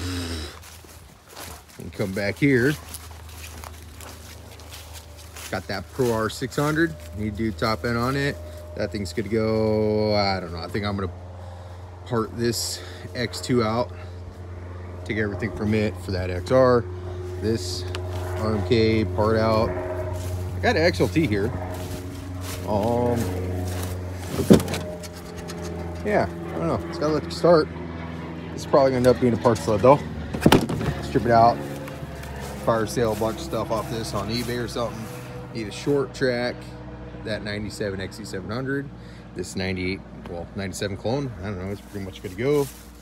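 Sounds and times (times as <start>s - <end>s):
motor humming: 0.0s - 1.0s, 3.0s - 35.6s
footsteps through grass: 0.0s - 12.0s, 12.6s - 27.4s, 28.0s - 36.0s, 40.9s - 43.0s
steady low rumble: 0.0s - 43.0s.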